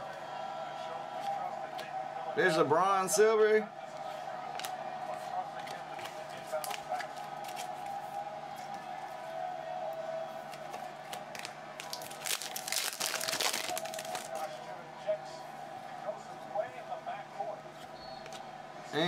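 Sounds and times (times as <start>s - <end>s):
foil pack tearing and crinkling: 11.3s - 14.5s.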